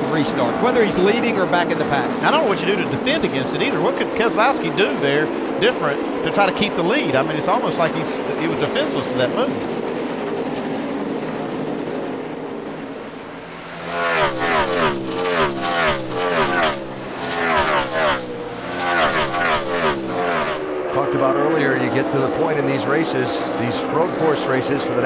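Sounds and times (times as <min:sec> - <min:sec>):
race car engines racing past: 0:00.0 - 0:25.0.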